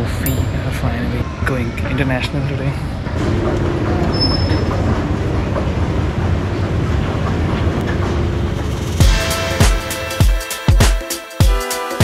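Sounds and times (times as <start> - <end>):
low mechanical rumble: 0.0 - 9.0.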